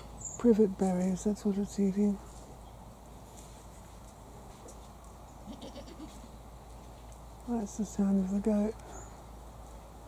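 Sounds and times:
goat bleating: 5.4 - 6.3.

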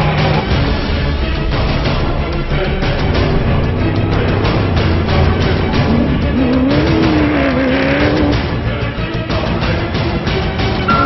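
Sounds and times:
pulsing music: 0.0 - 11.0
vehicle engine revving: 0.0 - 11.0.

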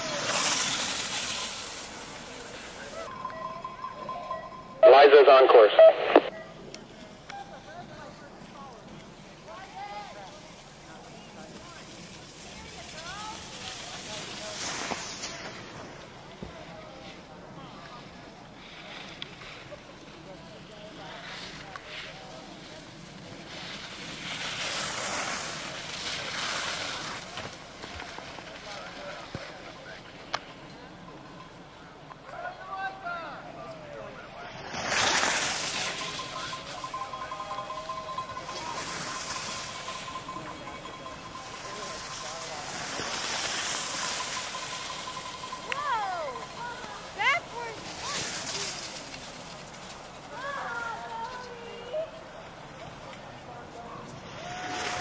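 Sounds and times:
distant voices of spectators: 0.0 - 55.0
faint steady high tone: 1.3 - 8.1, 35.2 - 49.1.

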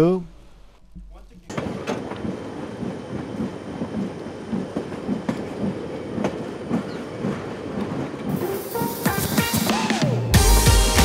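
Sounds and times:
train rumble: 0.0 - 11.0
train wheels clacking on rails: 0.9 - 10.1.

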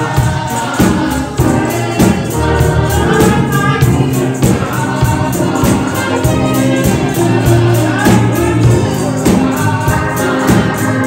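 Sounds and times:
group singing gospel song: 0.0 - 11.0
tambourine beat: 0.0 - 11.0.

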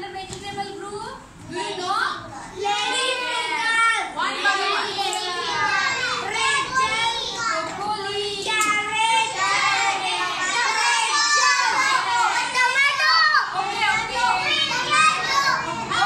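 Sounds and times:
young children talking and calling out: 1.4 - 16.0.

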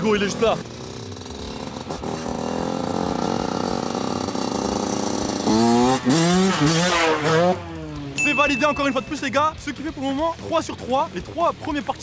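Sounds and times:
dirt bike engine revving: 0.0 - 12.0.

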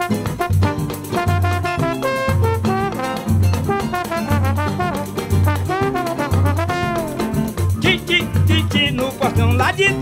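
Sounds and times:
samba band playing: 0.0 - 10.0
trombone sliding melody: 0.0 - 10.0.

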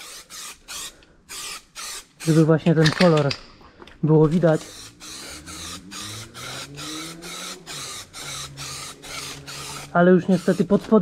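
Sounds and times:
aerosol spray can hissing in bursts: 0.0 - 2.4, 4.6 - 11.0.

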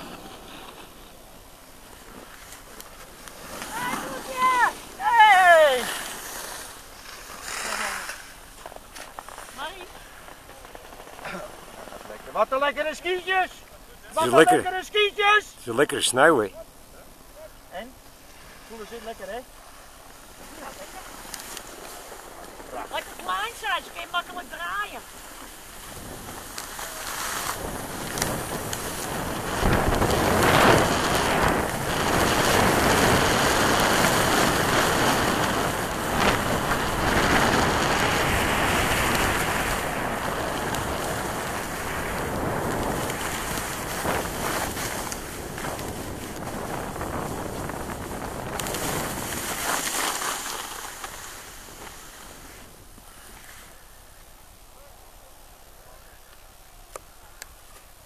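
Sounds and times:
skis sliding on packed snow: 0.0 - 16.6, 17.7 - 54.9
wind rushing over microphone: 25.8 - 50.2.

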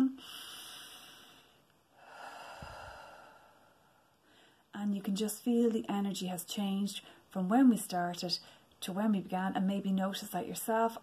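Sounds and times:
woman breathing deeply: 0.2 - 4.7.

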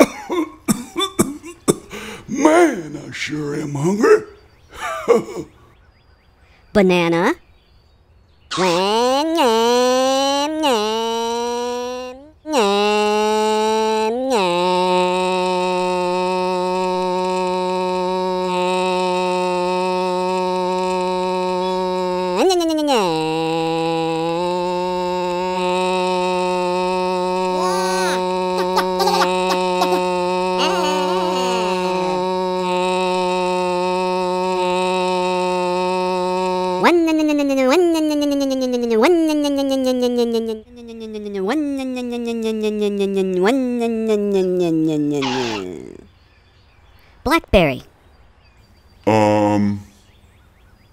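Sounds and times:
man's sharp vocal bursts: 0.0 - 5.5, 8.5 - 37.5, 43.6 - 46.1.

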